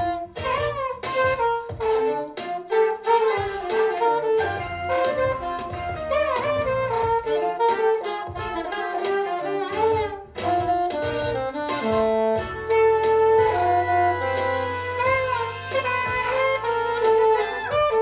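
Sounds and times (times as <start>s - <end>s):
saxophone playing jazzy melody: 0.0s - 18.0s.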